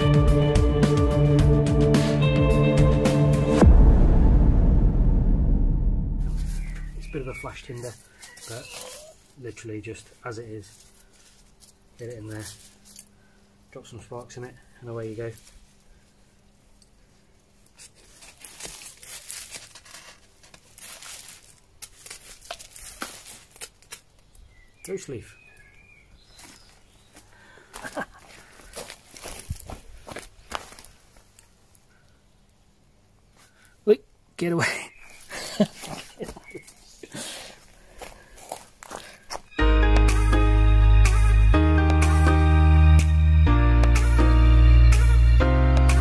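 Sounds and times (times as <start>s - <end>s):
hen footsteps on wood chips: 6.2s - 13.1s, 13.7s - 16.1s, 17.7s - 31.5s, 35.1s - 40.3s
tinder crinkling as it flares: 6.2s - 25.8s.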